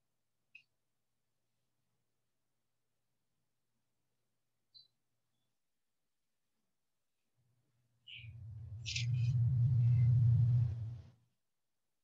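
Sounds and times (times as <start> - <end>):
low rumble: 8.1 - 11.2.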